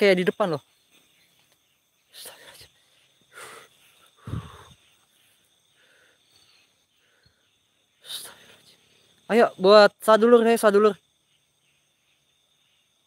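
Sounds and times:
crickets chirring: 0:00.0 - 0:13.0.

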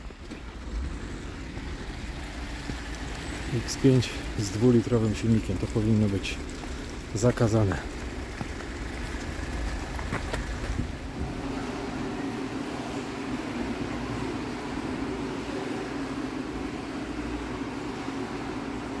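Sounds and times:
low machinery hum: 0:00.0 - 0:19.0
street traffic: 0:00.0 - 0:19.0.

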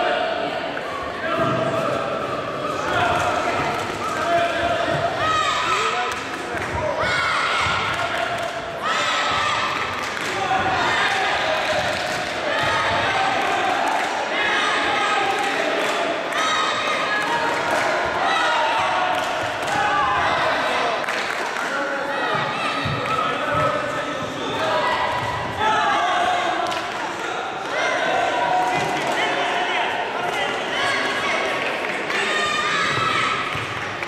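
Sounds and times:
voices shouting in echoing hall: 0:00.0 - 0:34.0.

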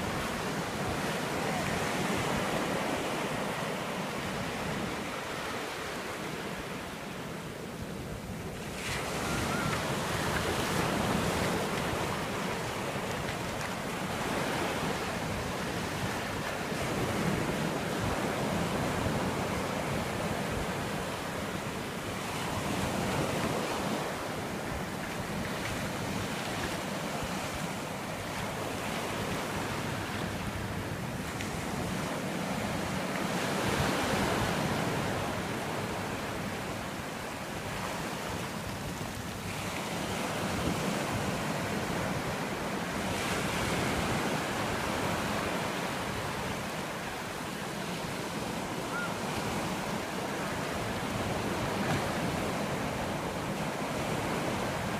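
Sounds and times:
ocean surf on beach: 0:00.0 - 0:54.9.

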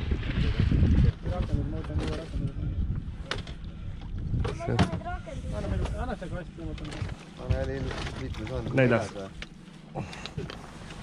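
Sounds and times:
small boat engine rumble: 0:00.0 - 0:11.0
men talking: 0:01.2 - 0:02.8, 0:04.5 - 0:09.4.

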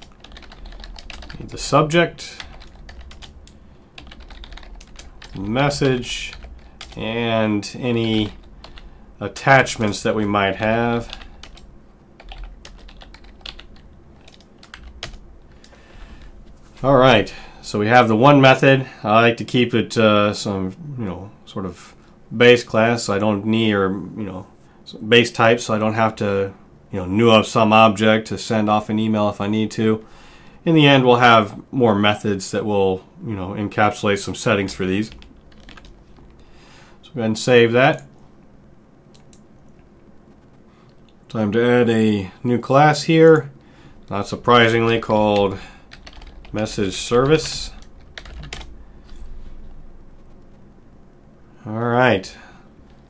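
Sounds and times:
computer keyboard typing: 0:00.0 - 0:07.2, 0:07.8 - 0:08.9, 0:09.6 - 0:16.3, 0:34.6 - 0:36.4, 0:39.1 - 0:39.4, 0:44.6 - 0:49.2.

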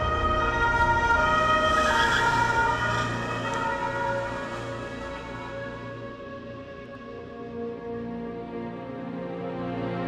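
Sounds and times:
low hum: 0:00.0 - 0:08.2.

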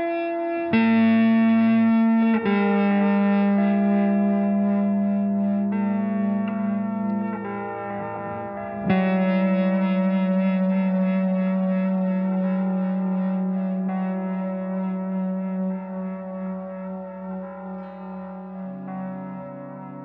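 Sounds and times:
electric guitar chords with echo: 0:00.0 - 0:20.0.

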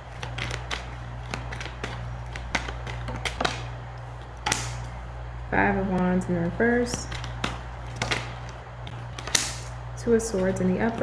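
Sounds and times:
cards being shuffled: 0:00.0 - 0:05.0, 0:05.9 - 0:11.0
steady low hum: 0:00.0 - 0:11.0.

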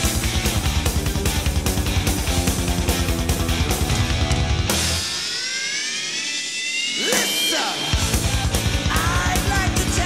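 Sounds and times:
hard rock band: 0:00.0 - 0:10.0.

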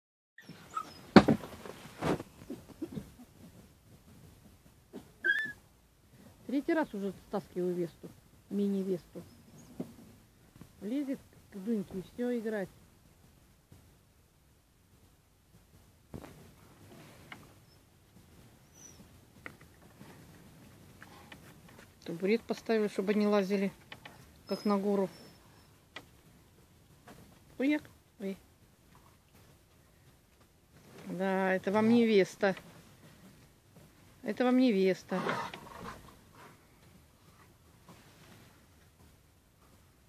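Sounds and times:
puppies whimpering: 0:00.4 - 0:01.1, 0:05.2 - 0:05.6.

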